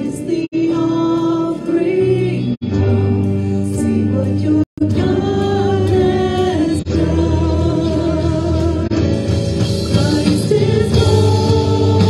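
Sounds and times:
women singing: 0:00.0 - 0:09.0, 0:09.9 - 0:12.0
bass: 0:00.0 - 0:12.0
electric guitars: 0:00.0 - 0:12.0
piano: 0:00.0 - 0:12.0.

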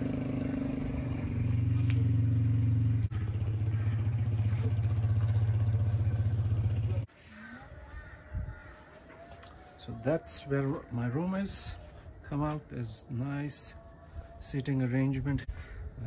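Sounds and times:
vehicle engine and road noise: 0:00.0 - 0:07.2
quiet outdoor background: 0:00.0 - 0:16.0.

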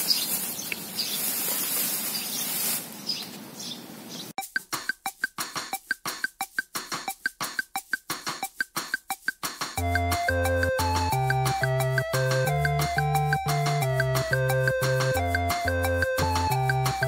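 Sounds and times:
plastic bag crinkling: 0:00.0 - 0:03.0
light background music: 0:04.4 - 0:17.0.

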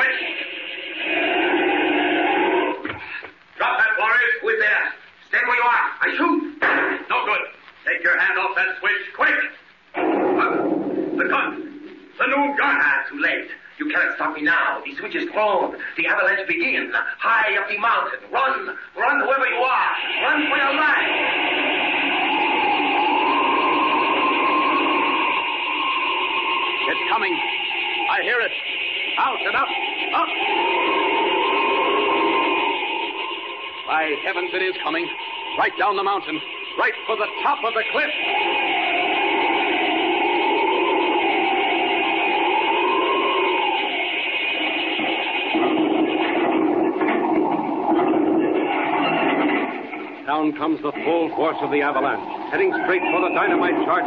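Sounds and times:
held tone: 0:19.5 - 0:50.1
avalanche rushing rumble: 0:19.5 - 0:54.0.

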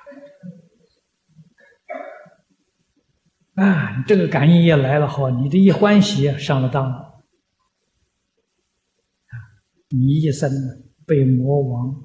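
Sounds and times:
man's short vocal sound: 0:03.6 - 0:04.1.

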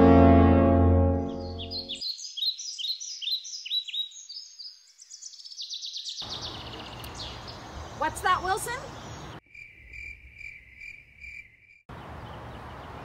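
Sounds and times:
low sustained music chord: 0:00.0 - 0:02.0
birds chirping: 0:01.1 - 0:13.0
fast high bird trill: 0:01.2 - 0:04.1
outdoor background hiss: 0:06.2 - 0:11.2.

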